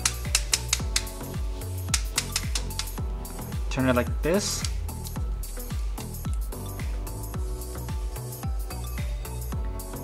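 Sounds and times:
sharp cymbal ticks: 0.0 - 1.2, 1.9 - 3.0.

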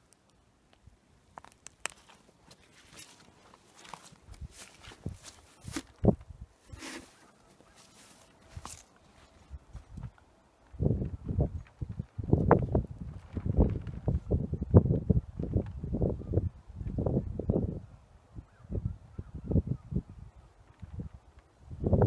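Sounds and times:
footsteps on soil and dry grass: 1.3 - 10.2.

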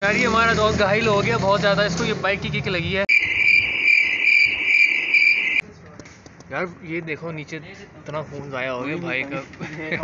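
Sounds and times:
crickets chirping: 3.1 - 5.6.

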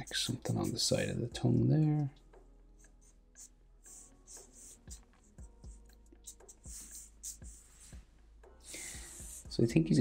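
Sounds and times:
marker scratching on paper: 2.8 - 8.1, 8.7 - 9.5.

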